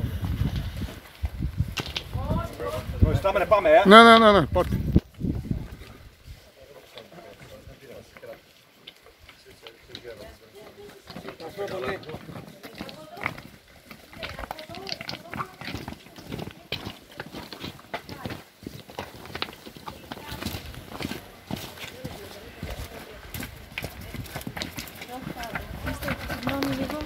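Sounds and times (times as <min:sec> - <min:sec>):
footsteps crunching on rocky path: 0:00.0 - 0:27.0
stones clattering underfoot: 0:00.2 - 0:02.6, 0:08.2 - 0:27.0.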